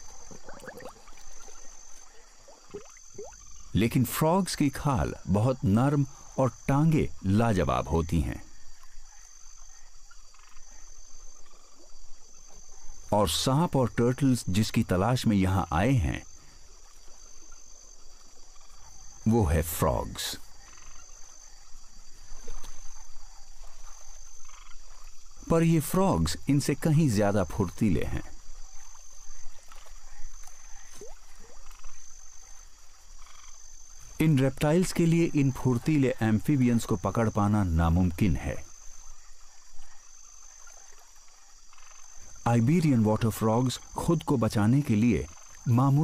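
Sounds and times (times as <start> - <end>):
frog croaking: 0.0 - 46.0
high insect trill: 0.0 - 46.0.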